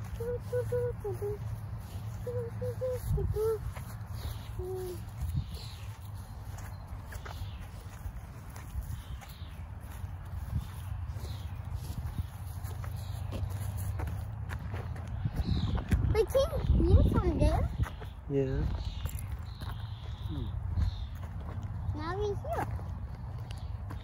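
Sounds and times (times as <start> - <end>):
birds chirping: 0.0 - 24.0
footsteps on grass: 0.0 - 24.0
wind buffeting microphone: 0.0 - 24.0.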